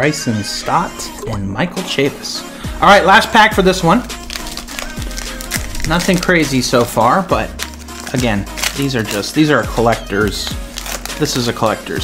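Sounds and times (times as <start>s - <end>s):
background music: 0.0s - 12.0s
foil wrapper crinkling and tearing: 3.6s - 12.0s.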